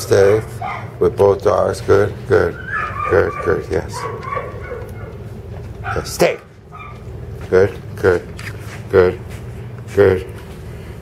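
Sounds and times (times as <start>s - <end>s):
person talking: 0.0s - 4.3s
dogs barking in background: 0.1s - 1.3s, 2.2s - 7.6s.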